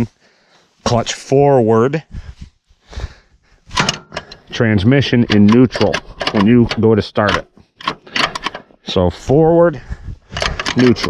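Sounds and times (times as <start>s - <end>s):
metal clunks of levers: 3.7s - 4.5s, 5.2s - 8.7s.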